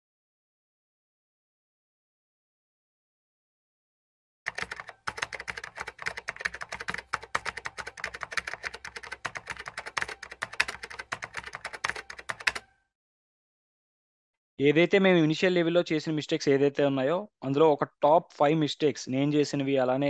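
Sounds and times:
computer keyboard typing clicks: 4.5s - 12.8s.

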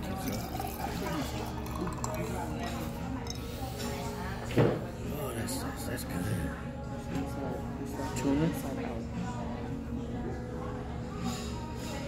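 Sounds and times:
soft music: 0.0s - 12.0s
tableware clinking: 0.1s - 3.6s.

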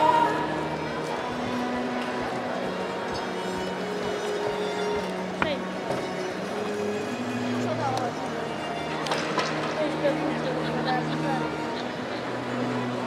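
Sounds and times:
crowd hubbub: 0.0s - 13.0s
music with held notes: 0.0s - 13.0s.

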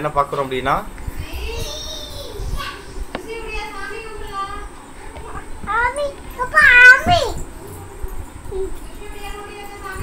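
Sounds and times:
children's voices: 1.2s - 7.5s.

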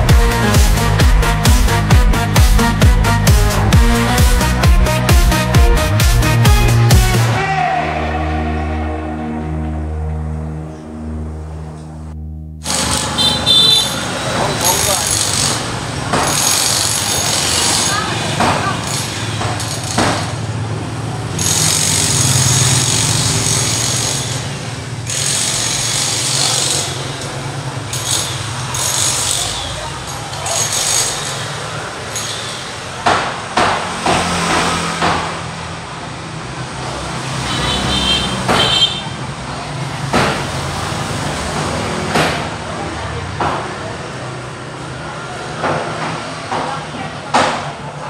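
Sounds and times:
indistinct voices: 6.2s - 20.1s
vehicle engines running: 9.6s - 48.0s.

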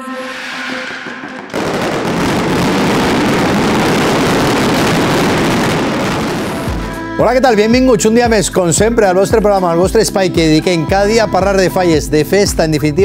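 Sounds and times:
firecrackers rapid cracks: 1.1s - 6.9s.

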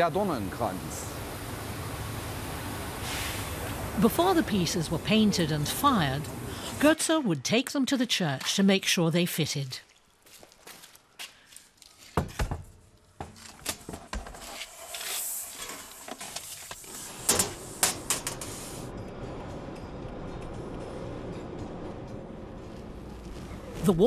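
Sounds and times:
steel sheets sliding: 14.4s - 18.9s.

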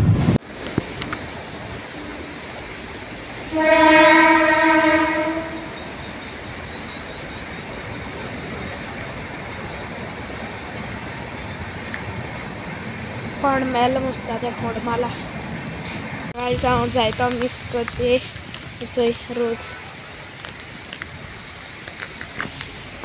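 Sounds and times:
background hiss: 0.4s - 23.0s
vehicle horn: 3.5s - 5.8s.

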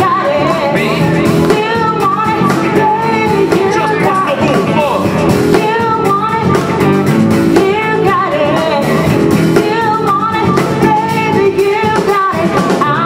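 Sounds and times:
person singing: 0.0s - 6.9s, 7.5s - 13.0s
drum kit: 0.0s - 13.0s
guitar: 0.0s - 13.0s
keyboard: 0.0s - 13.0s.

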